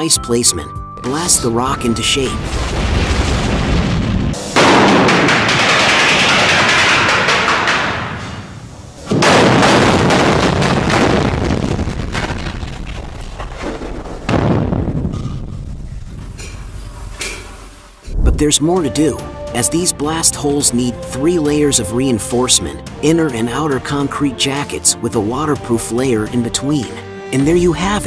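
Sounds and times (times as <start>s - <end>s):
explosive blasts: 1.4s - 17.2s, 17.9s - 19.6s.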